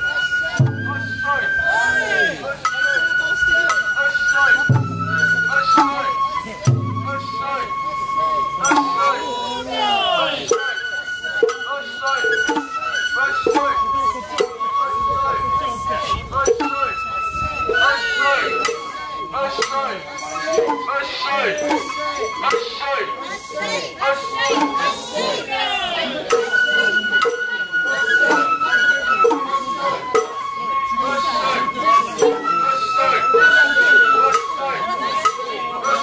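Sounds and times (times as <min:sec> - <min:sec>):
bamboo flute melody: 0:00.0 - 0:36.0.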